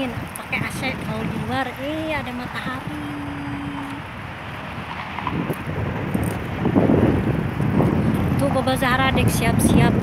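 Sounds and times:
road traffic noise: 0.0s - 10.0s
wind buffeting microphone: 0.0s - 10.0s.

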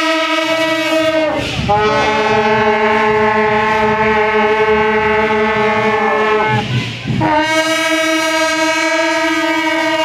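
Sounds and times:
brass horns sounding long note: 0.0s - 10.0s.

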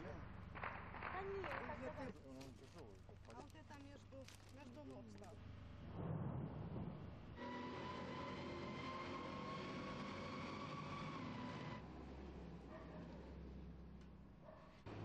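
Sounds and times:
low steady rumble: 0.0s - 7.4s
tracked vehicle whine: 5.4s - 15.0s.

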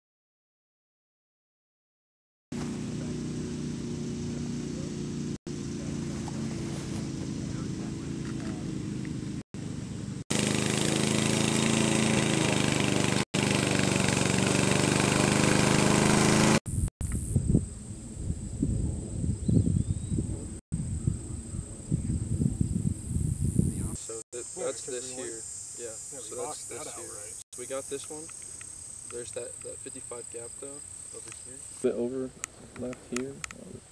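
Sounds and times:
lawn mower engine running: 2.6s - 16.9s
insects chirring: 16.7s - 17.8s, 20.8s - 33.6s
wind on microphone: 16.7s - 24.2s.

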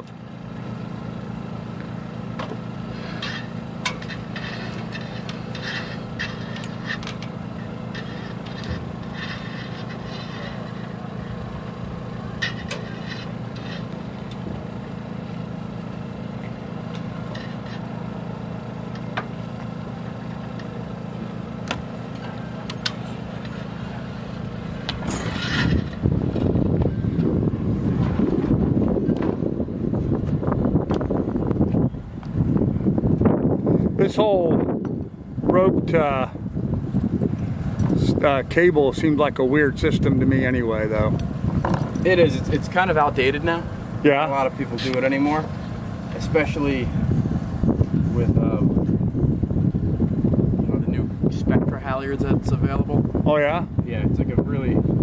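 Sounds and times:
low engine hum: 0.0s - 55.0s
rough low rumble: 24.3s - 55.0s.

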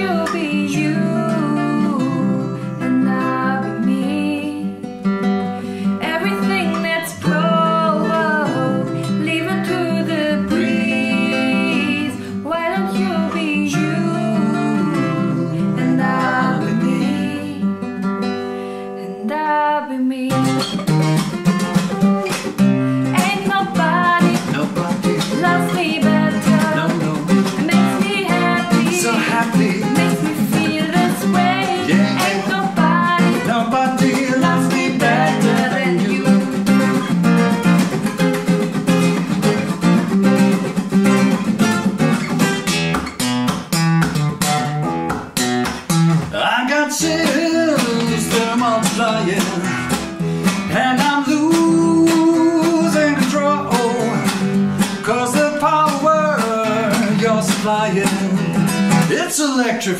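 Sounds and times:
woman singing: 0.0s - 5.1s, 5.8s - 18.0s, 18.8s - 20.9s, 23.0s - 37.1s, 50.7s - 54.3s
acoustic guitar: 0.0s - 59.9s.

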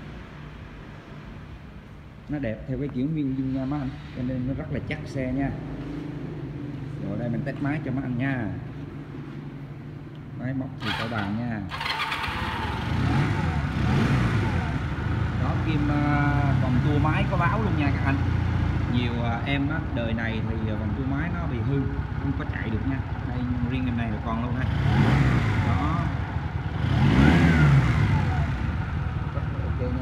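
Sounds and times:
motorcycle engine revving: 10.8s - 19.2s, 20.2s - 30.0s
motorcycle engine idling: 27.4s - 30.0s.

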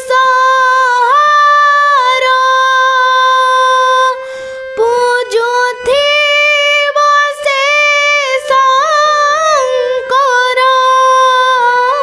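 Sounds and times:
girl singing long notes: 0.0s - 12.0s
harmonium: 0.0s - 12.0s.

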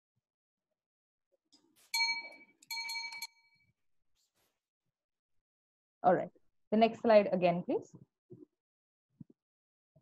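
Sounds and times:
short bell-like chimes: 1.9s - 3.7s.

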